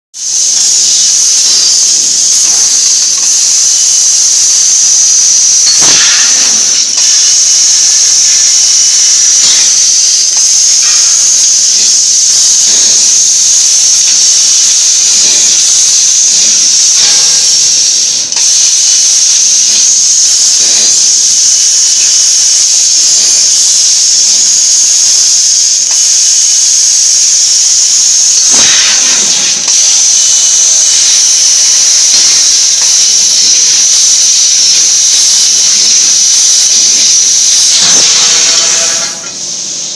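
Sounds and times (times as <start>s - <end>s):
laser cutting machine hiss: 0.2s - 39.9s.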